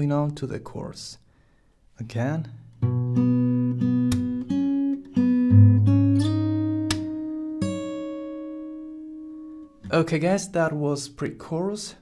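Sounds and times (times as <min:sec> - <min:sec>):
fingerstyle acoustic guitar: 0:02.6 - 0:10.1
percussive slaps on guitar strings: 0:04.1 - 0:04.4, 0:06.8 - 0:07.2.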